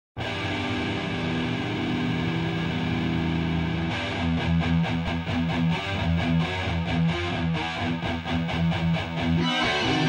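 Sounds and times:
distorted electric guitar chord: 0.2 - 10.0.

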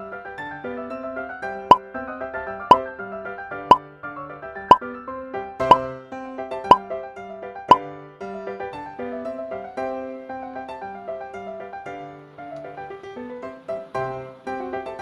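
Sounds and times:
light keyboard music: 0.0 - 15.0.

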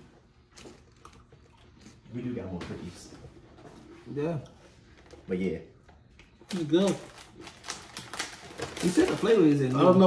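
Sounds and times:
plastic packaging crinkling: 6.4 - 10.0.

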